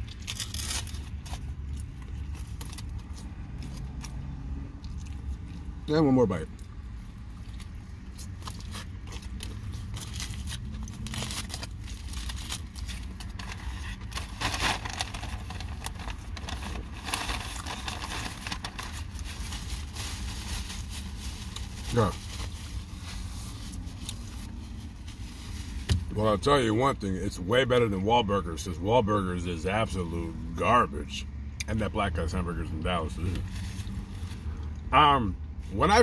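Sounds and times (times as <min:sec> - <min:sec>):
foil wrapper crinkling: 0:00.0 - 0:03.2, 0:08.4 - 0:25.9
low rumble inside car: 0:00.0 - 0:36.0
person chewing food: 0:01.1 - 0:05.8, 0:06.5 - 0:11.2.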